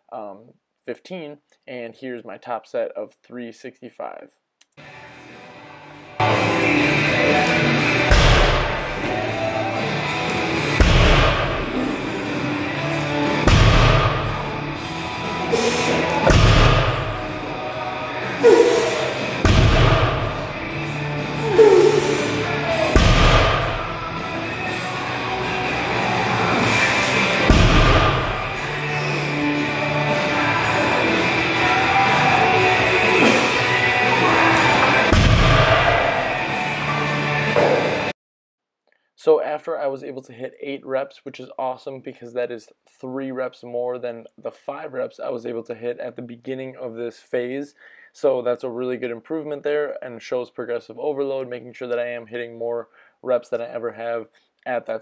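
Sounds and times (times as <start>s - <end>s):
background music: 4.8s - 38.1s.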